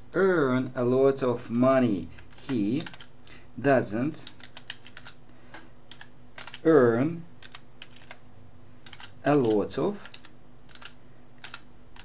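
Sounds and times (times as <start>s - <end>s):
computer keyboard keystrokes: 2.1s - 3.1s, 4.2s - 5.2s, 5.9s - 6.6s, 7.4s - 8.2s, 8.8s - 12.0s.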